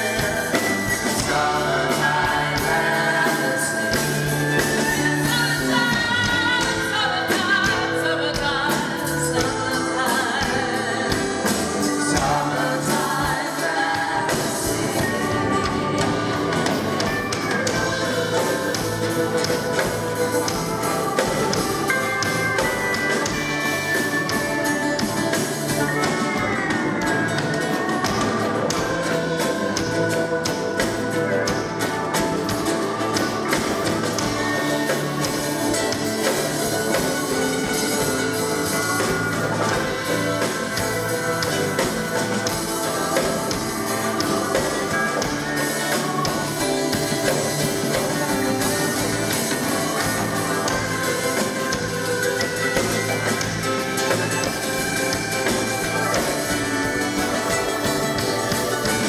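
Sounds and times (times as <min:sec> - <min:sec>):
acoustic guitar melody: 0:00.0 - 0:59.0
live country band playing: 0:00.0 - 0:59.0.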